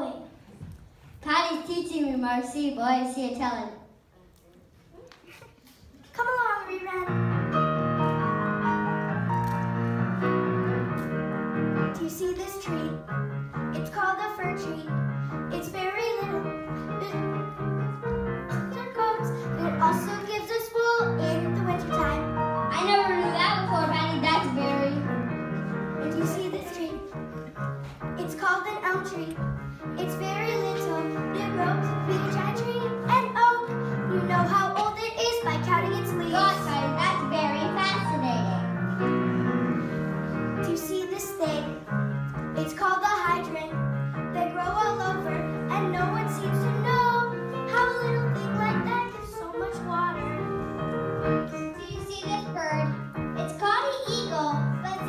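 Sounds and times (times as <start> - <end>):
musical accompaniment: 6.7 - 55.0
child singing: 18.5 - 25.1, 30.0 - 38.6, 42.6 - 50.6, 51.7 - 55.0.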